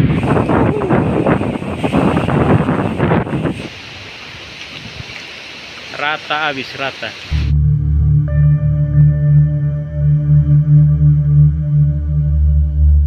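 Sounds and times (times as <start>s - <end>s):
wind buffeting microphone: 0.0s - 3.7s
storm wind gusting through trees: 0.0s - 7.5s.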